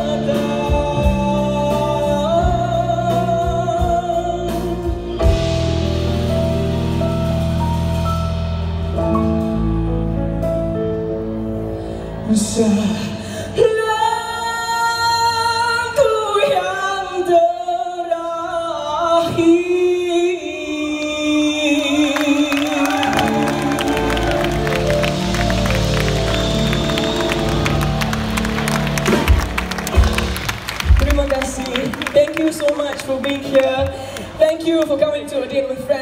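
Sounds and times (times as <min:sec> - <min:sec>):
drums: 0:00.0 - 0:16.9, 0:21.5 - 0:36.0
live pop band playing: 0:00.0 - 0:18.1, 0:21.5 - 0:36.0.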